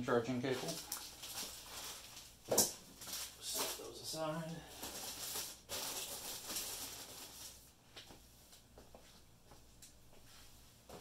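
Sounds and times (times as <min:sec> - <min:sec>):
plastic packaging rustling: 0:00.3 - 0:07.7.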